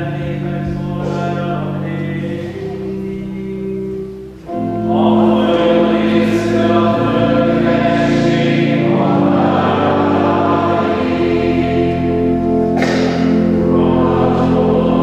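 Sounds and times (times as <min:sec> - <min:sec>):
choir singing sustained notes: 0:00.0 - 0:15.0.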